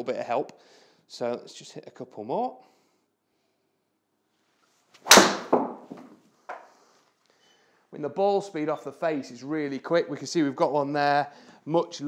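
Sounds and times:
golf club striking ball: 5.0 - 6.0.

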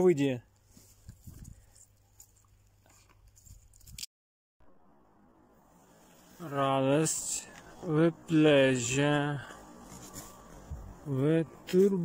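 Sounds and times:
soft rustles and ticks: 0.5 - 4.1.

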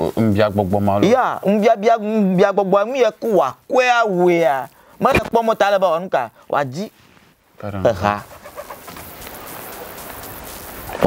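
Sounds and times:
man speaking: 0.0 - 7.0, 7.6 - 8.4
steady background hiss: 0.0 - 11.0.

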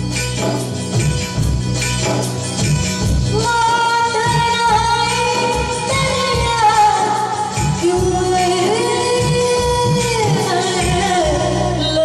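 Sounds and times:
band playing: 0.0 - 12.0
woman singing into microphone: 3.2 - 12.0.

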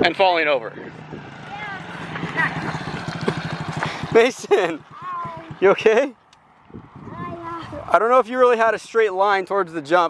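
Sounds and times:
motorbike engine idling: 0.9 - 7.6.

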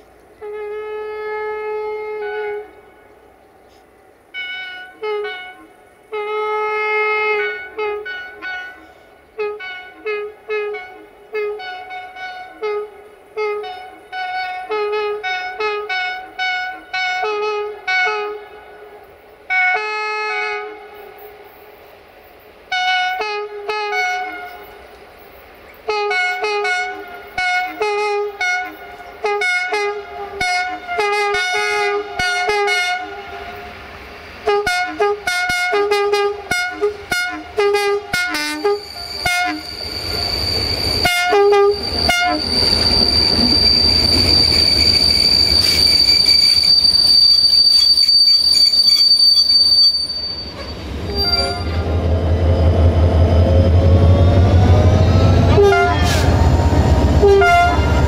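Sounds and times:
train rolling noise: 0.0 - 58.0
locomotive horn blasts: 0.4 - 3.1, 4.3 - 21.2, 22.7 - 24.8, 25.9 - 33.7, 34.4 - 52.0, 54.6 - 56.5, 57.2 - 58.0
high wheel squeal: 38.5 - 58.0.

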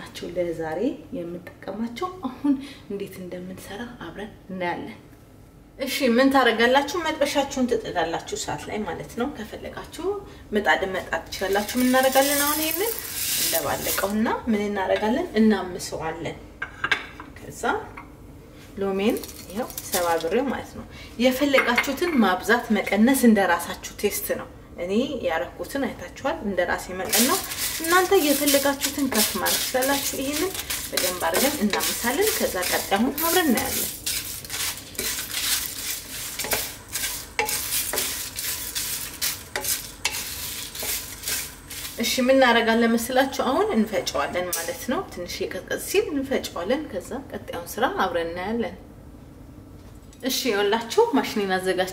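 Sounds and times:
spatula scraping spices in wok: 11.4 - 14.2, 27.0 - 42.6.

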